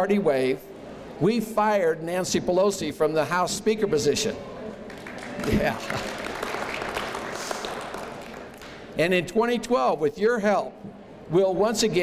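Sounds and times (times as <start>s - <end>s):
audience applauding: 4.9s - 8.9s.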